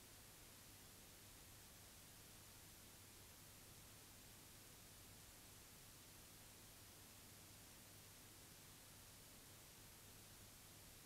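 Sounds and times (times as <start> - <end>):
faint hiss: 0.0 - 11.0.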